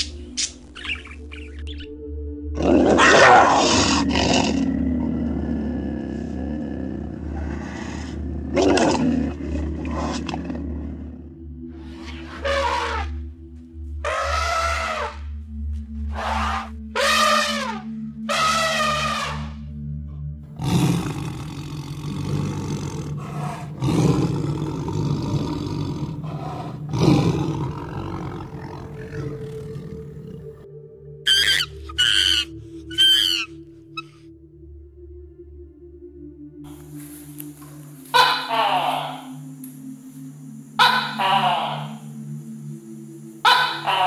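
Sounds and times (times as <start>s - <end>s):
high-pitched macaque calls: 0.0s - 1.8s, 31.3s - 34.1s, 38.1s - 39.4s, 40.8s - 42.0s, 43.4s - 44.0s
background music: 0.0s - 44.0s
tiger roaring and growling: 2.6s - 13.2s, 14.0s - 15.3s, 16.1s - 19.6s, 20.6s - 30.7s
elephant trumpeting: 11.8s - 13.2s, 14.0s - 15.3s, 16.1s - 19.6s, 31.3s - 34.1s, 38.1s - 39.4s, 40.8s - 42.1s, 43.4s - 44.0s.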